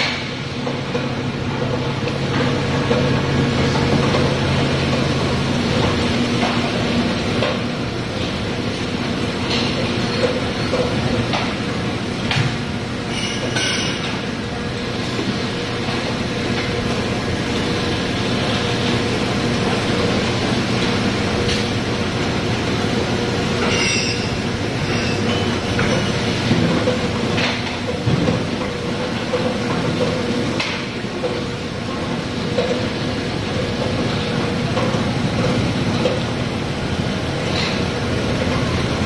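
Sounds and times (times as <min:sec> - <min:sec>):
machines and conveyor running: 0:00.0 - 0:39.0.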